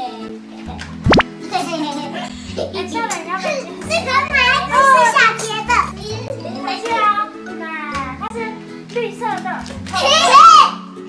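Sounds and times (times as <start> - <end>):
background music with low bass: 0.0 - 11.0
boys shouting and squealing: 10.0 - 10.8.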